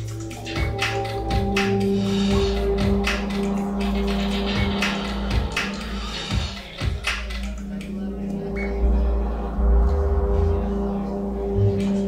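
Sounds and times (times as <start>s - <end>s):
deep bass swells: 0.0s - 12.0s
low electronic drone tones: 0.0s - 12.0s.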